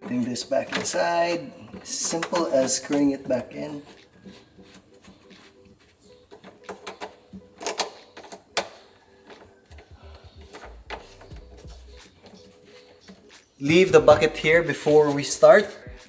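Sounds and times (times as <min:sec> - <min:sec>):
pipe nut clicking and scraping: 0:00.0 - 0:04.1.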